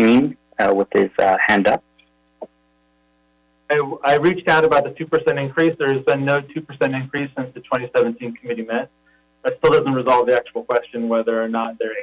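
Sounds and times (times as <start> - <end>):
man speaking: 0.0 - 1.8, 3.7 - 12.0
faint electrical hum: 0.0 - 12.0.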